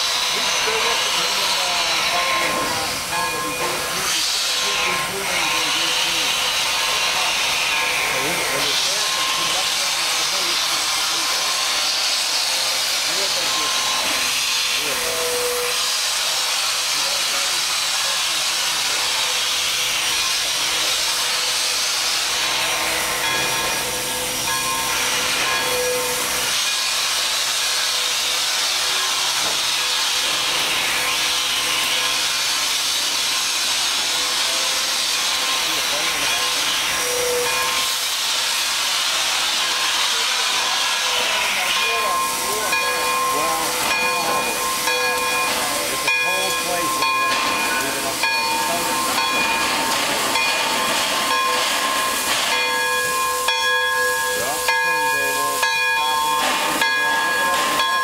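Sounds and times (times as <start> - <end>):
steam hissing from locomotive: 0.0 - 58.0.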